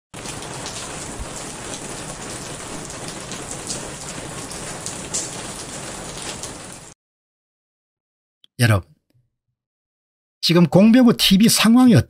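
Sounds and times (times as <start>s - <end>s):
steady rain falling: 0.1s - 7.0s.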